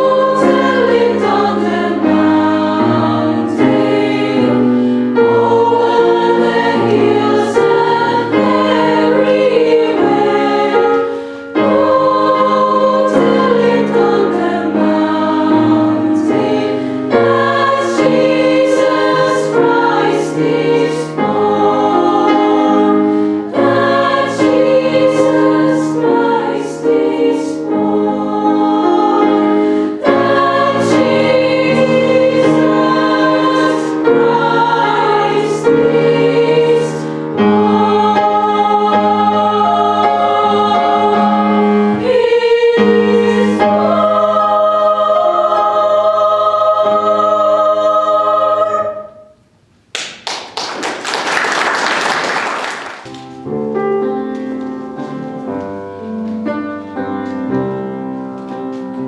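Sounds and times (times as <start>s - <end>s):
girls' choir singing: 0.0s - 49.4s.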